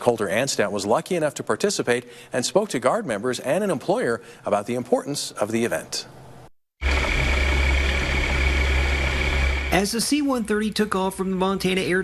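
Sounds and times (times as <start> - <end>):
high engine whine: 6.8 - 10.6
turboprop engines droning: 6.8 - 11.4.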